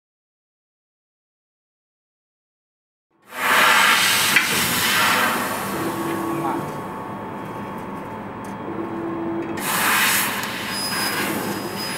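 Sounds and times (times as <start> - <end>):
laser cutter hissing: 3.3 - 7.2, 9.6 - 11.9.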